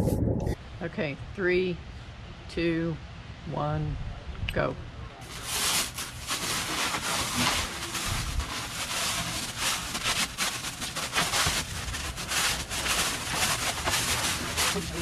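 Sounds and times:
cling wrap crinkling rustle: 0:05.2 - 0:15.0.

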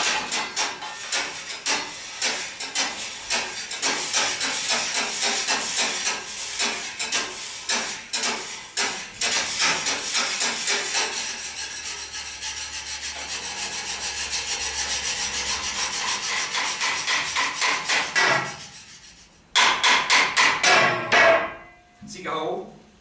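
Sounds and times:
utensils clattering: 0:00.0 - 0:11.6
utensils scraping tableware: 0:00.0 - 0:19.4
metallic ring: 0:20.8 - 0:22.0.

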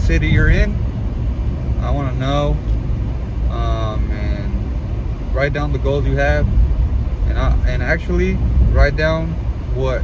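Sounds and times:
man talking: 0:00.0 - 0:00.8, 0:01.8 - 0:02.7, 0:03.5 - 0:04.7, 0:05.3 - 0:06.6, 0:07.2 - 0:10.0
car cabin engine rumble: 0:00.0 - 0:10.0.

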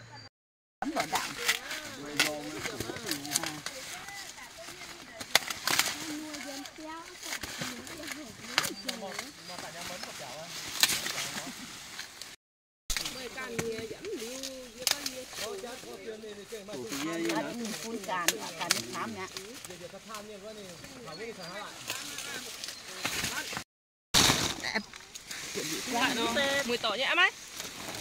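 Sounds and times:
people talking: 0:00.0 - 0:11.7, 0:13.0 - 0:23.6, 0:25.6 - 0:27.3
corn husks crackling and snapping: 0:00.8 - 0:23.6, 0:24.2 - 0:28.0.

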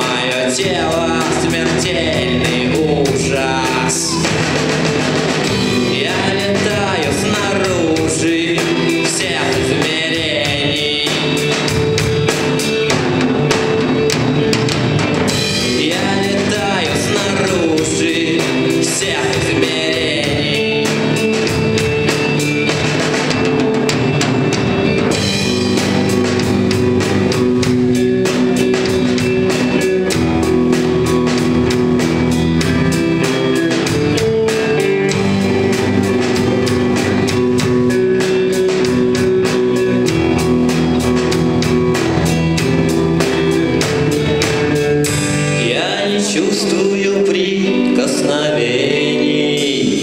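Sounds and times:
live rock band playing: 0:00.0 - 0:50.0.

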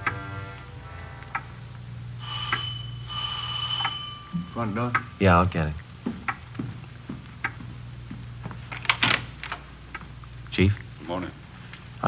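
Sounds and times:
electric doorbell ringing: 0:02.2 - 0:05.3.

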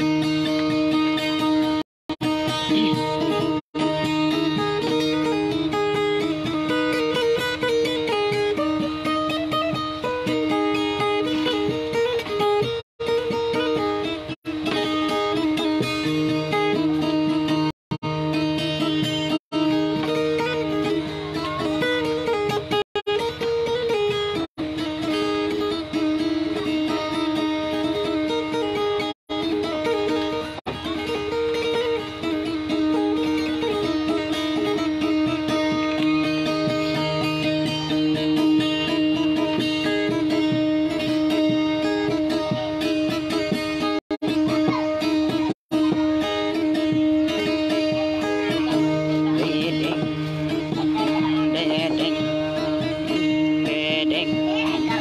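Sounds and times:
solo guitar picking melody: 0:00.0 - 0:55.0.

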